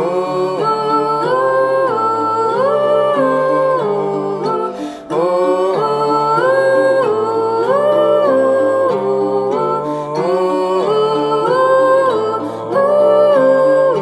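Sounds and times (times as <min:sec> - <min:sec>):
strummed ukulele: 0:00.0 - 0:14.0
voices humming in harmony: 0:00.0 - 0:14.0.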